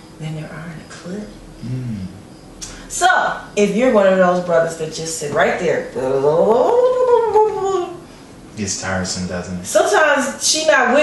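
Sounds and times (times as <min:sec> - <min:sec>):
woman's wordless vocal glide: 0:05.2 - 0:08.0.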